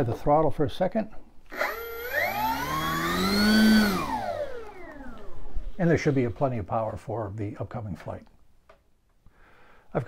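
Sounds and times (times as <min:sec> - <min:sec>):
model plane electric motor whine: 0:01.5 - 0:05.6.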